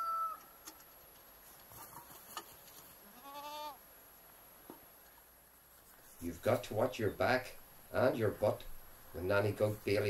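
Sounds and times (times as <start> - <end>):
goat bleating: 3.0 - 3.8.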